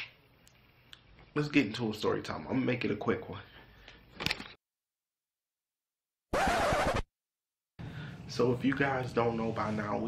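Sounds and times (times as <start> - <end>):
record scratch: 6.3 - 7.1.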